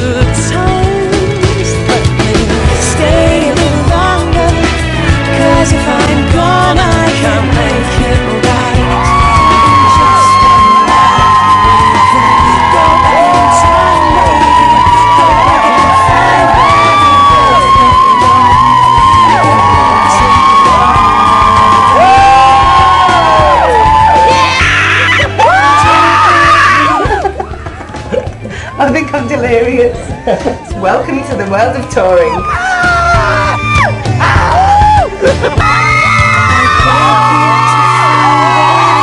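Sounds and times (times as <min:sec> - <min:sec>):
crowd screaming and cheering: 0:00.0 - 0:39.0
pop song with singer: 0:00.0 - 0:39.0.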